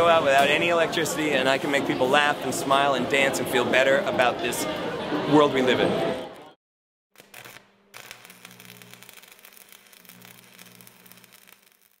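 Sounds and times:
crackling static: 7.2 - 12.0.

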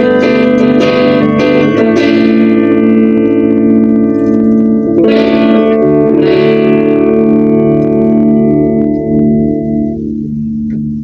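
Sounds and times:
overdriven electric guitar chord ringing: 0.0 - 11.0.

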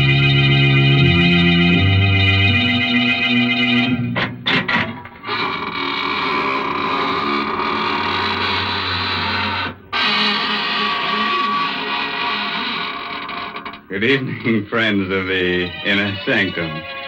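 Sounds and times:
sustained organ chords: 0.0 - 5.1, 13.9 - 17.0.

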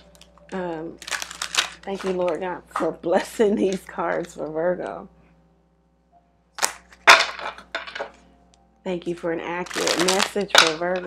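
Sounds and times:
cards being shuffled: 0.0 - 2.8, 6.6 - 8.2, 9.6 - 11.0.

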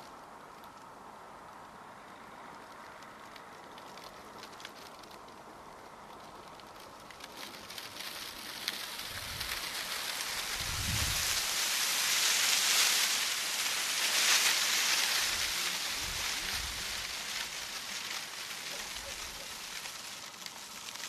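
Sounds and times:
rushing rustling hiss: 0.0 - 21.0.

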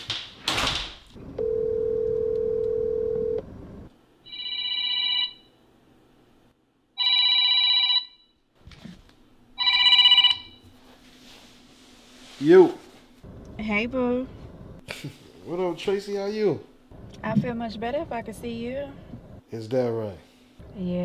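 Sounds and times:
phone call tone: 1.4 - 3.4, 4.3 - 5.5, 7.0 - 8.2, 9.6 - 10.6
smartphone ringtone: 4.3 - 5.5, 7.0 - 8.2, 9.6 - 10.6.

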